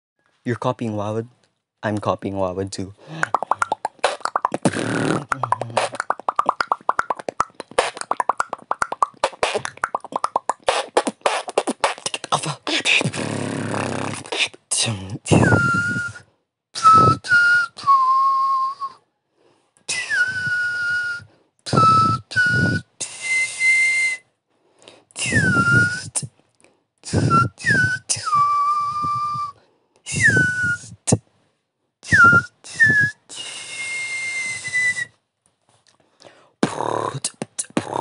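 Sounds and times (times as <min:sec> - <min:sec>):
beatbox kick drum sounds: 0:03.1 - 0:15.7
beatbox whistling: 0:03.2 - 0:19.0, 0:19.9 - 0:24.2, 0:25.2 - 0:26.3, 0:27.0 - 0:31.2, 0:32.0 - 0:35.2.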